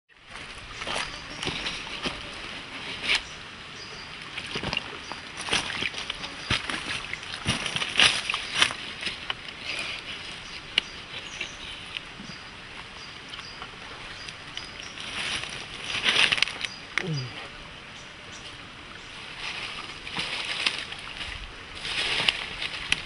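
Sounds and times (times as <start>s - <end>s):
wet sloshing and squelching: 4.2s - 12.0s.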